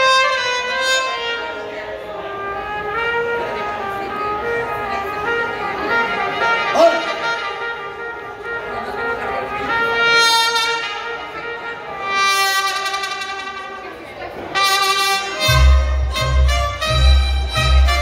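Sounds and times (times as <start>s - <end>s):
mariachi band playing: 0.0s - 18.0s.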